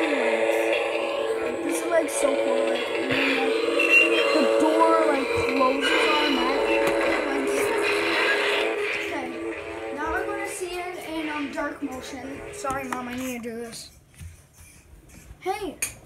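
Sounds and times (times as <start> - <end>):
music from small speaker: 0.0 - 8.3.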